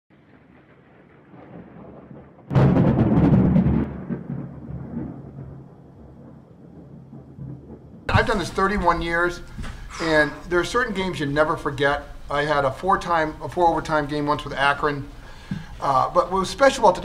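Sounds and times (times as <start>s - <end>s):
heavy boom: 1.4s - 5.5s, 7.7s - 10.9s.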